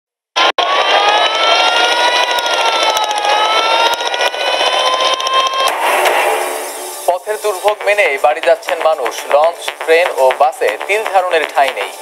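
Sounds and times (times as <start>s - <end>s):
noisy background: 0.4s - 12.0s.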